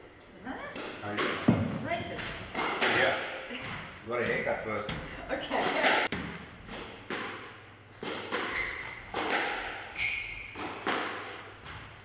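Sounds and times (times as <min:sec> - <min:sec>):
people talking: 0:04.1 - 0:06.1.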